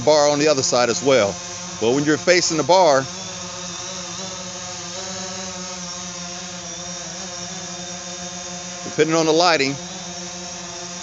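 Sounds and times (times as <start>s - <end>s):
drone propellers buzzing: 0.0s - 11.0s.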